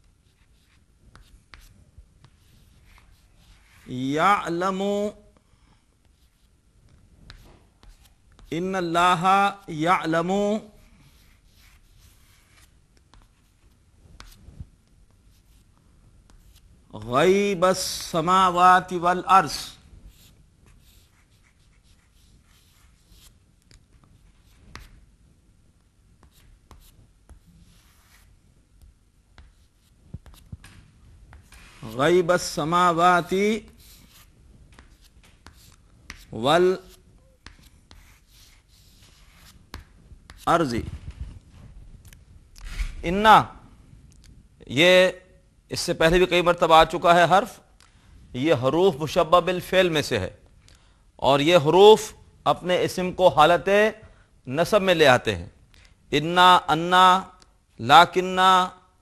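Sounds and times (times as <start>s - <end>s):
chalk scratching on chalkboard: 0.0s - 4.1s, 6.0s - 8.6s, 10.8s - 14.5s, 19.5s - 25.1s, 26.2s - 40.6s
chalk tapping on chalkboard: 0.3s - 3.9s, 26.2s - 31.8s, 33.7s - 36.3s, 37.3s - 40.5s
chalk tapping on board: 33.7s - 36.3s.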